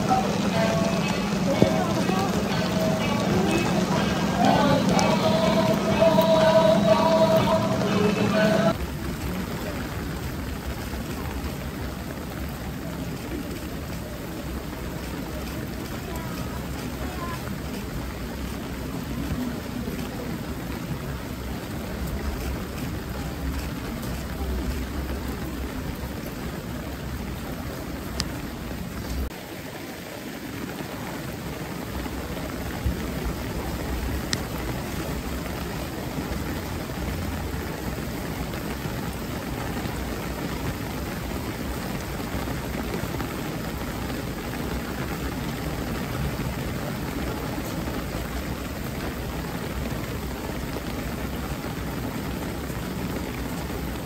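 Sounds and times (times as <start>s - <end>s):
steady rain falling: 0.0s - 54.0s.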